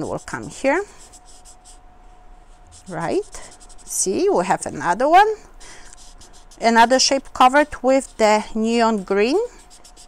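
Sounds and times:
highlighter scratching on eggshell: 0:00.0 - 0:01.8, 0:02.4 - 0:05.0, 0:05.6 - 0:10.0
thin steady hum: 0:00.0 - 0:10.0.

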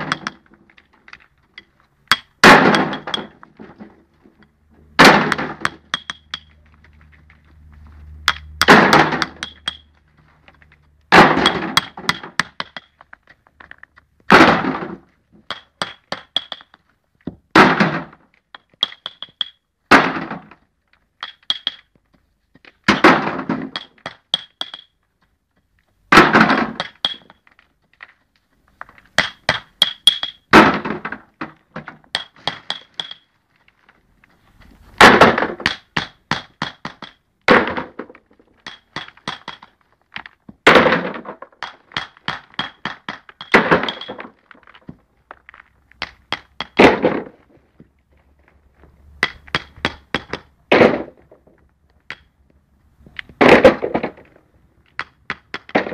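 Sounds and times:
hammer tapping pebbles: 0:00.0 - 0:03.4, 0:05.3 - 0:09.9, 0:11.4 - 0:14.4, 0:15.4 - 0:17.4, 0:18.5 - 0:19.6, 0:21.0 - 0:26.0, 0:26.7 - 0:30.5, 0:32.1 - 0:33.3, 0:35.5 - 0:37.2, 0:38.0 - 0:40.6, 0:41.2 - 0:47.9, 0:49.0 - 0:50.5, 0:53.2 - 0:55.9
stony clinks: 0:00.0 - 0:04.6, 0:05.3 - 0:07.6, 0:08.2 - 0:10.8, 0:15.4 - 0:16.9, 0:18.4 - 0:19.6, 0:20.9 - 0:22.7, 0:26.7 - 0:30.5, 0:31.4 - 0:34.7, 0:38.3 - 0:47.0.

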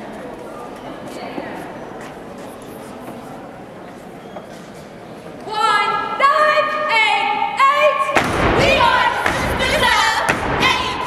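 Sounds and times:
women singing together: 0:05.5 - 0:11.0
chanted voices: 0:05.6 - 0:11.0
foot stomps: 0:08.2 - 0:11.0.

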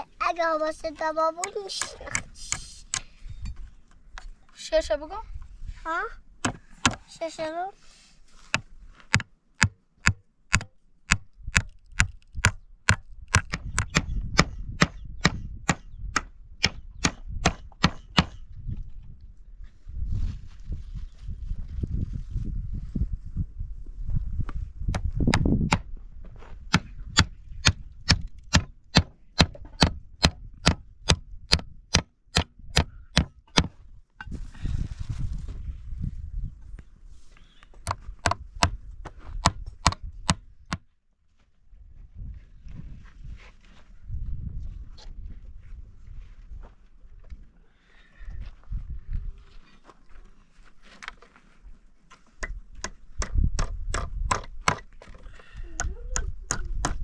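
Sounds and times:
hammer driving nails into wood: 0:09.1 - 0:18.4, 0:26.7 - 0:33.8, 0:52.4 - 0:55.2.

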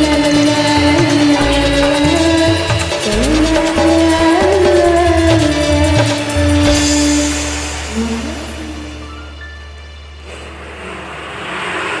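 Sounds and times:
rushing swell of noise: 0:07.3 - 0:12.0.

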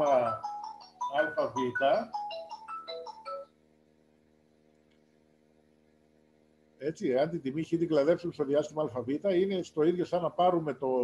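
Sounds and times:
phone ringtone melody: 0:00.0 - 0:03.6.

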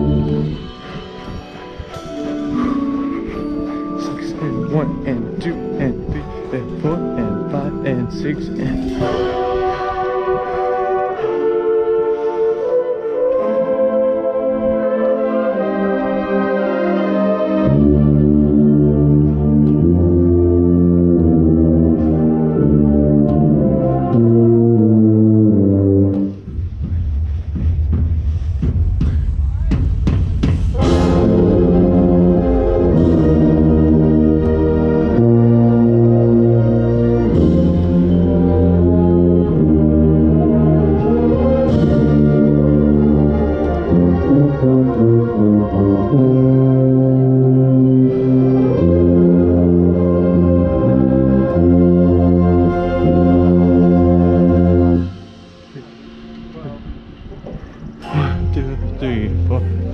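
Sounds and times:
brass section playing held chords: 0:00.0 - 0:26.4, 0:30.8 - 0:56.0.

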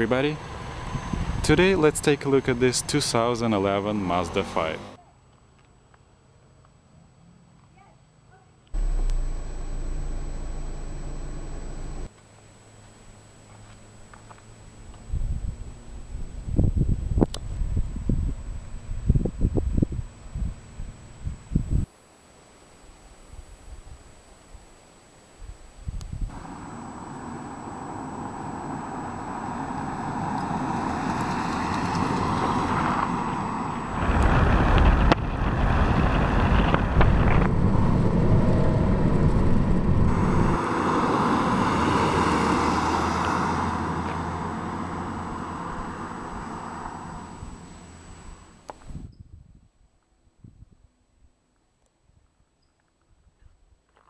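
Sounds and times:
tyre and wind road noise: 0:00.0 - 0:05.0, 0:08.8 - 0:12.2, 0:13.2 - 0:21.9, 0:25.5 - 0:49.8
wind buffeting microphone: 0:33.8 - 0:41.8.

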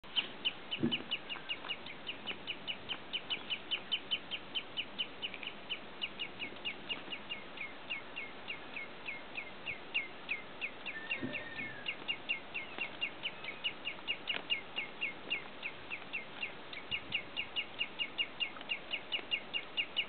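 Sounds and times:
redshanks piping calls: 0:00.1 - 0:20.0.

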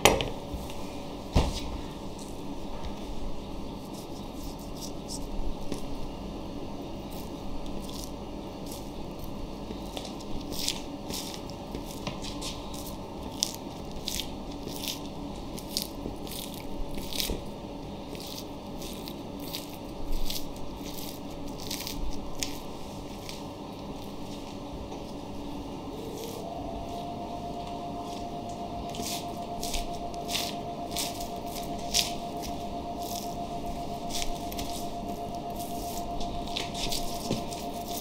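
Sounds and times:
steady low background hum: 0:00.0 - 0:38.0.

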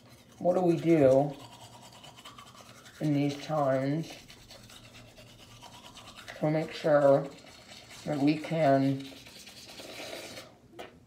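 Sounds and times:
toothbrush scrubbing teeth: 0:00.0 - 0:10.6.

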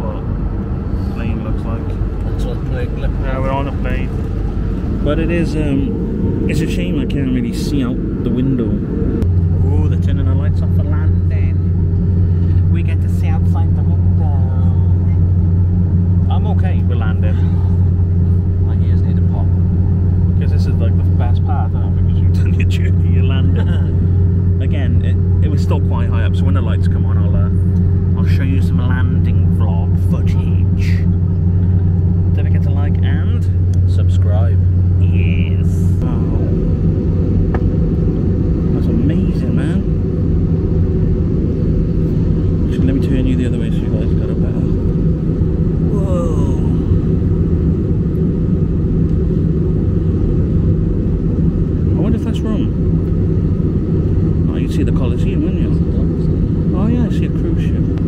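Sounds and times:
indistinct voices: 0:00.0 - 0:11.8, 0:32.2 - 0:36.9, 0:42.5 - 0:47.5
jet cabin engine drone: 0:00.0 - 0:58.0.

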